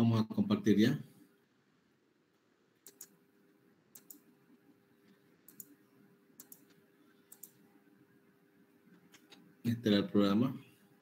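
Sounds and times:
faint steady hum: 0.0s - 11.0s
computer mouse clicks: 2.3s - 3.2s, 3.9s - 4.3s, 5.0s - 5.8s, 6.4s - 7.6s.

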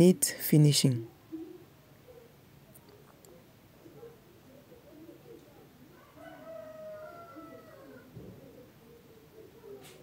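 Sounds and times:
quiet room noise: 0.0s - 10.0s.

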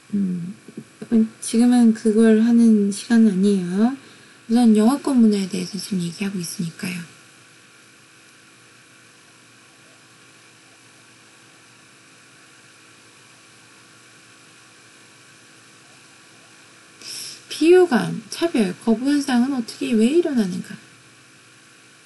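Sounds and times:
faint microphone hiss: 0.0s - 22.0s
low electrical hum: 0.0s - 22.0s.

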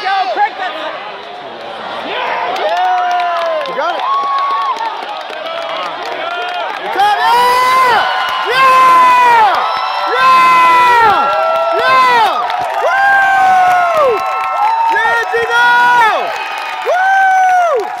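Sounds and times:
crowd cheering: 0.0s - 18.0s
people yelling long shouts: 6.8s - 17.9s.

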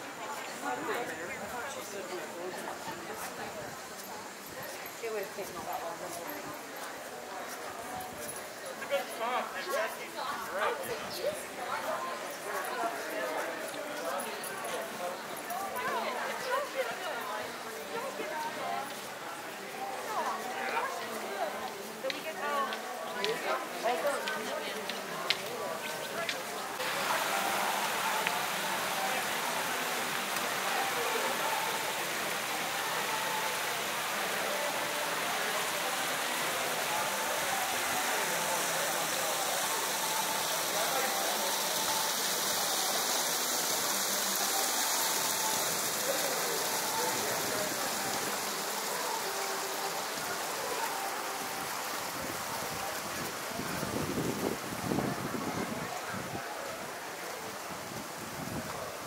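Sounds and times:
faint voices of people: 0.0s - 59.0s
fountain water splashing: 0.0s - 59.0s.

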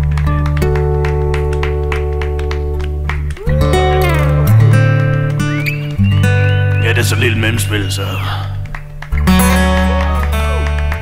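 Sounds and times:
acoustic guitar over bass: 0.0s - 11.0s.

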